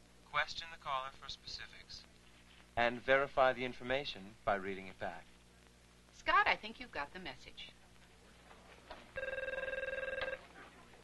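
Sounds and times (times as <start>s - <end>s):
electronic telephone ringing: 9.2s - 10.5s.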